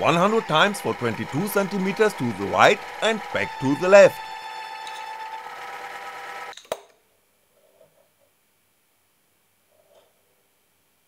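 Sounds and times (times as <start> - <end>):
electric motor whining: 0.0 - 6.5.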